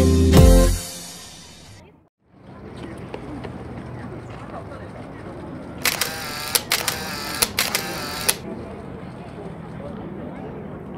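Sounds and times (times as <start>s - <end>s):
camera shutters firing in bursts: 5.8s - 8.4s.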